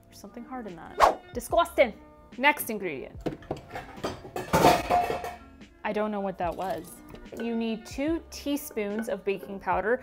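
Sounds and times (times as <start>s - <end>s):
kitchen utensils clinking: 3.4s - 5.5s, 6.5s - 7.9s.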